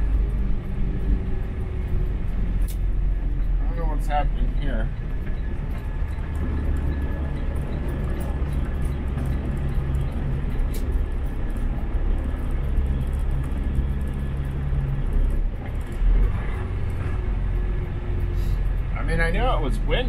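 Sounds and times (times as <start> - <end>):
road noise: 0.0 - 20.0
truck diesel engine drone: 0.0 - 20.0.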